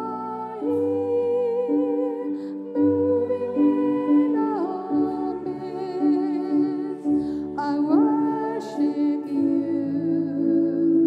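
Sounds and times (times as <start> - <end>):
digital piano chords: 0.0 - 11.0
woman singing with vibrato: 0.0 - 11.0.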